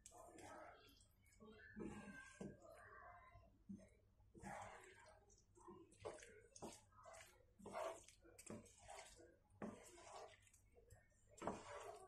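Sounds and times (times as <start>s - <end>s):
wooden spatula scraping frying pan: 1.8s - 2.6s, 3.7s - 10.6s, 11.4s - 12.0s.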